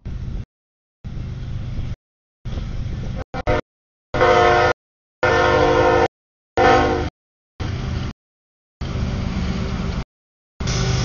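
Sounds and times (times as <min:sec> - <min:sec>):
locomotive air horn blasts: 0:03.3 - 0:07.1.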